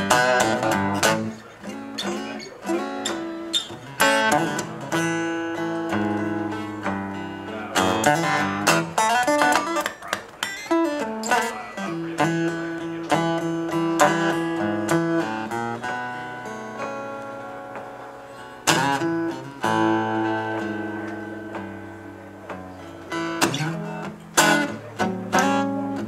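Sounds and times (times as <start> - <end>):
acoustic guitar blues: 0.0 - 26.0.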